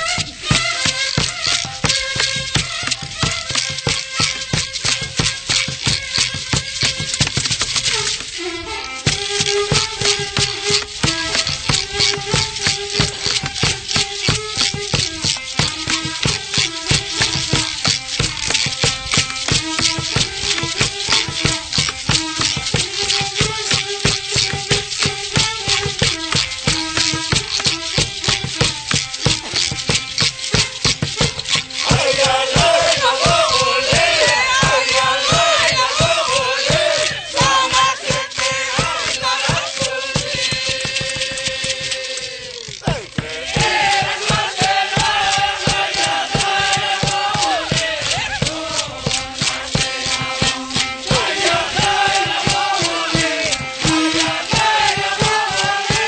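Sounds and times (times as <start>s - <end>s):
one-string fiddle melody: 0.0s - 56.0s
rattles shaken in quick rhythm: 0.0s - 56.0s
voices chanting a song: 31.8s - 56.0s.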